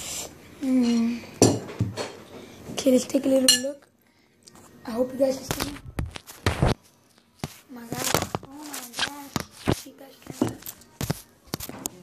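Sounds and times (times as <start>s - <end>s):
dishes clattering on a table: 1.4s - 2.4s.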